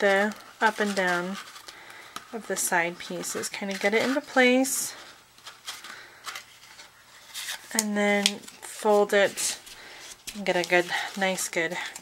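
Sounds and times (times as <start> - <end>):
soft brushing sounds: 0.0 - 1.6
paper rustling: 0.0 - 12.0.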